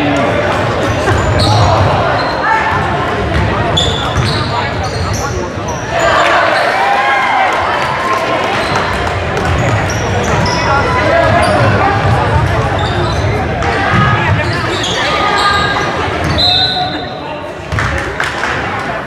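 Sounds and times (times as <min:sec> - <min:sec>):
sneakers squeaking: 0:00.0 - 0:07.0, 0:08.3 - 0:18.0
players calling out: 0:00.0 - 0:18.2.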